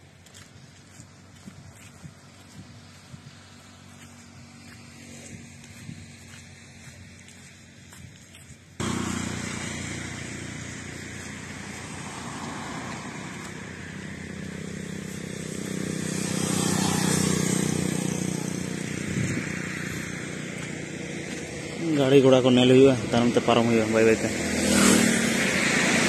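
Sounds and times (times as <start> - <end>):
hum of vehicles: 0.0 - 26.0
motorcycle engine passing by: 0.3 - 7.7, 8.8 - 26.0.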